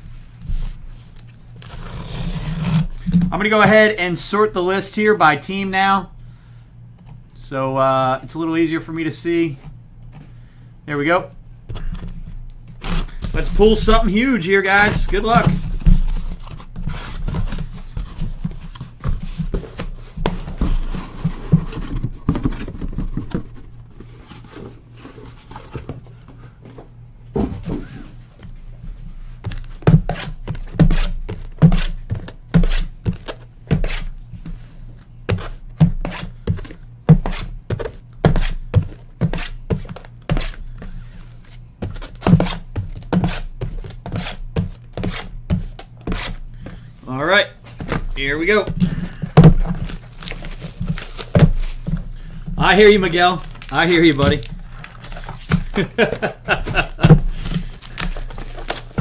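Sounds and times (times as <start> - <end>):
cardboard rustling: 11.7 - 26.6, 47.6 - 59.0
cardboard knocks and thuds: 14.8 - 24.7, 48.7 - 52.1, 53.4 - 59.0
boxes set down in a stack: 54.2 - 59.0.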